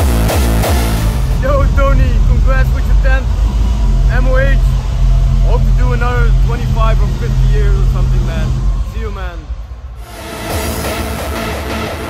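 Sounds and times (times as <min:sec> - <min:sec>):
loud low rumble: 0:00.0 - 0:12.0
man talking: 0:01.3 - 0:03.3, 0:04.0 - 0:04.8, 0:05.4 - 0:09.5.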